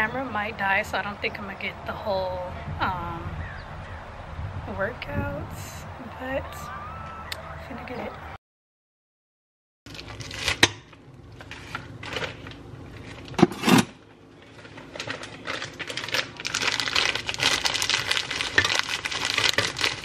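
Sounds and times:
plastic bag rustling: 14.4s - 20.0s.

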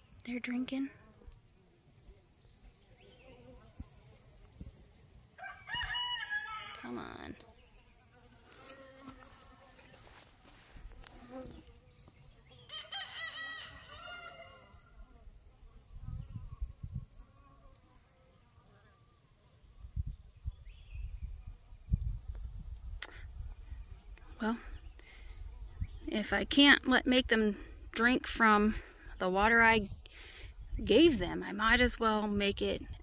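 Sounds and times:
rooster crowing: 5.4s - 6.9s, 12.7s - 14.9s
bees buzzing: 6.9s - 19.0s.

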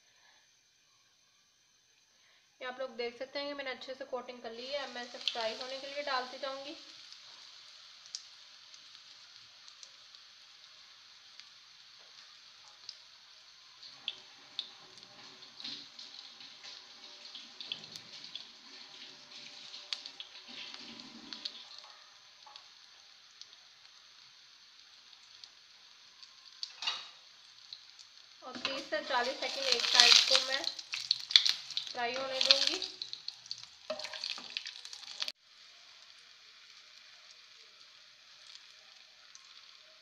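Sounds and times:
bread sizzling in oil: 0.0s - 40.0s
small crackles and pops: 4.6s - 40.0s.

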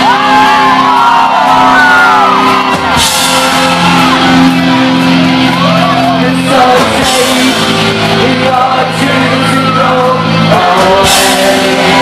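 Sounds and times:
live rock band playing: 0.0s - 12.0s
shouted vocals: 0.0s - 12.0s.

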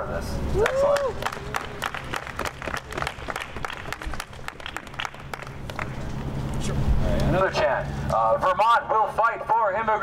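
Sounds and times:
small group applauding: 0.6s - 6.0s.

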